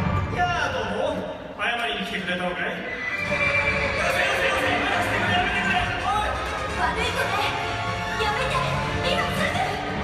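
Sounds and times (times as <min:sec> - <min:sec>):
horse whinny over loudspeaker: 0:02.7 - 0:05.7.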